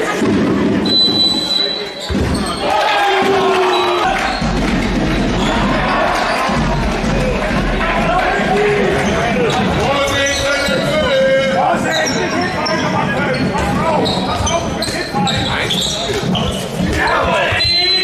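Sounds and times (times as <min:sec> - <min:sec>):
sneakers squeaking on court: 0:01.3 - 0:02.7, 0:11.9 - 0:18.0
players calling out: 0:01.3 - 0:18.0
ball bouncing on hall floor: 0:02.0 - 0:03.3, 0:04.0 - 0:11.1, 0:12.7 - 0:17.8.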